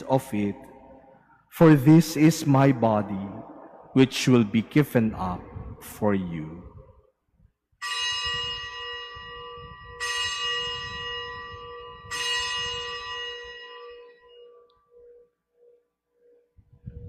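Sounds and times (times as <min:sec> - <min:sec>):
bell ringing: 0:07.8 - 0:15.9.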